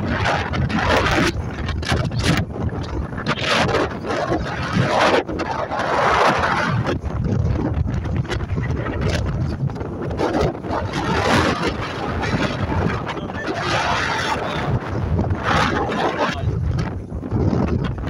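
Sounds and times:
boat engines rumbling: 0.0s - 18.0s
water: 0.0s - 18.0s
wind buffeting microphone: 0.0s - 18.0s.

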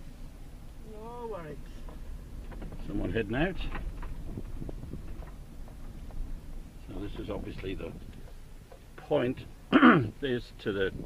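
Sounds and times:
car rumble on dirt track: 1.6s - 11.0s
light knocks and rattles: 1.7s - 9.5s.

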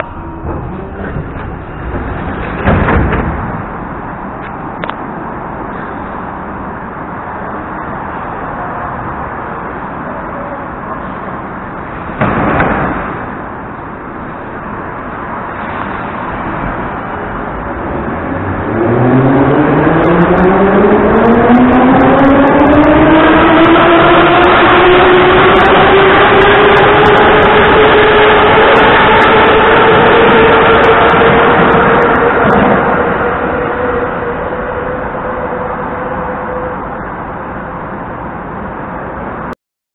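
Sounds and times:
train motors whining: 0.0s - 5.0s.

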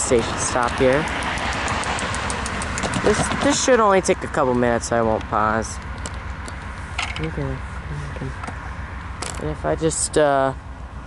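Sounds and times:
car driving past: 0.1s - 3.8s.

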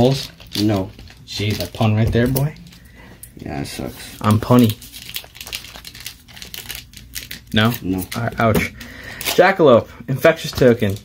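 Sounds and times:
foil wrapper crinkling: 0.0s - 9.6s, 10.4s - 11.0s.

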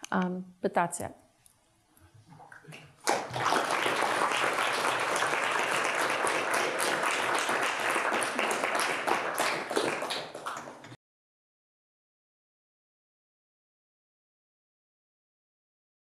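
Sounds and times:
audience applauding: 3.0s - 11.0s.

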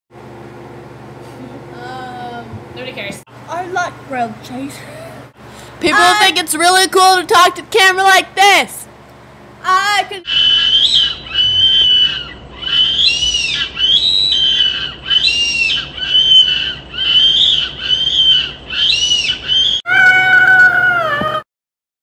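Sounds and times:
girl screaming: 5.8s - 6.4s, 19.8s - 21.4s
high-pitched squeals: 10.3s - 21.4s.

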